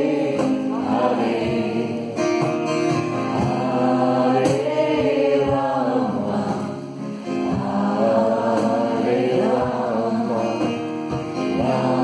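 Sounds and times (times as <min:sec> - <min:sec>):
voices singing a chant: 0:00.0 - 0:02.6, 0:03.3 - 0:12.0
acoustic guitar: 0:00.0 - 0:12.0
hand drum: 0:00.0 - 0:12.0.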